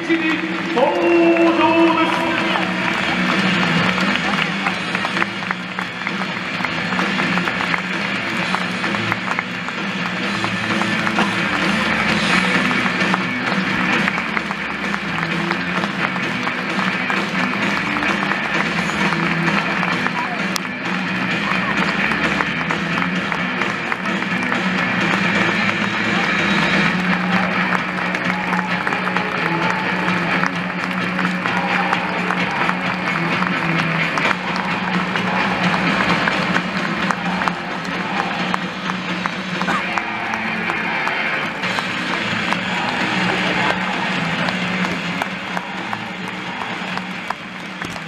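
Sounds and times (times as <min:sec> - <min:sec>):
music playing: 0:00.0 - 0:48.0
spectators clapping: 0:00.0 - 0:48.0
stadium crowd applauding: 0:00.0 - 0:48.0.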